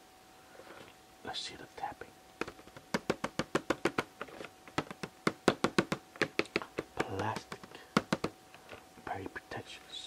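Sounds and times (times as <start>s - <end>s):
fingertips tapping on plastic: 2.4s - 9.2s.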